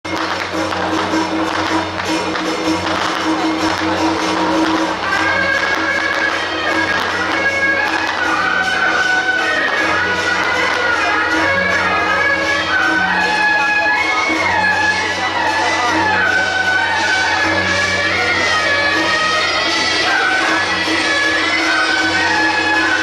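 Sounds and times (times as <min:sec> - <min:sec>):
percussion strokes: 0:00.1 - 0:23.0
shrill reed instrument melody: 0:00.1 - 0:23.0.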